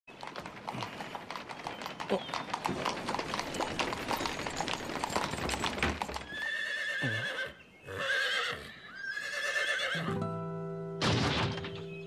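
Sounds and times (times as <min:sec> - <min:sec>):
horse hooves clip-clopping: 0:00.1 - 0:06.7.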